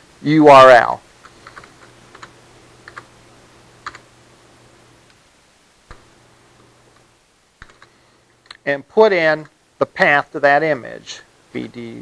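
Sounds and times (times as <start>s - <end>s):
faint steady hum: 0.0s - 12.0s
computer keyboard typing: 1.2s - 3.1s, 3.8s - 4.1s, 7.6s - 7.9s.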